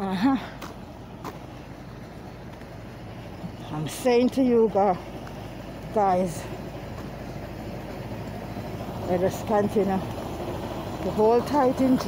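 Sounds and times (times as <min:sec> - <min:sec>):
low rumbling outdoor background: 0:00.0 - 0:12.0.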